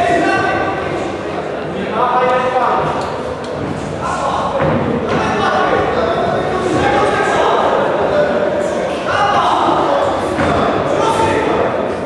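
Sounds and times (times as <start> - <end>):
crowd shouting in echoing hall: 0.0 - 12.0.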